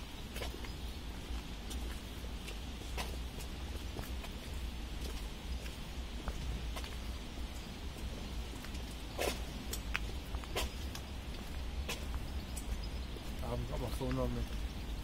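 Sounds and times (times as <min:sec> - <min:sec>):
footsteps on pavement: 0:00.0 - 0:15.0.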